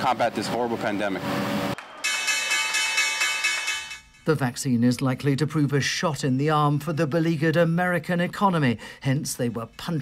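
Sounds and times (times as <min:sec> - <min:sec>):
electric bell ringing: 0:02.0 - 0:04.2.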